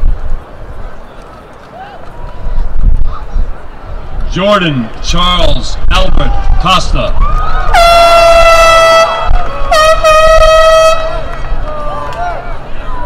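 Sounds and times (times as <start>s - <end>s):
voices cheering: 1.6s - 3.4s, 5.4s - 13.0s
air horn blasts: 7.7s - 11.3s.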